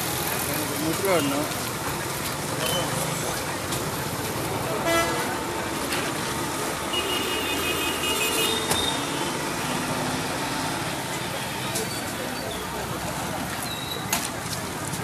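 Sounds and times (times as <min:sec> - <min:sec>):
crowd voices: 0:00.0 - 0:15.0
street traffic: 0:00.0 - 0:15.0
vehicle horns: 0:04.7 - 0:05.4, 0:06.9 - 0:09.9.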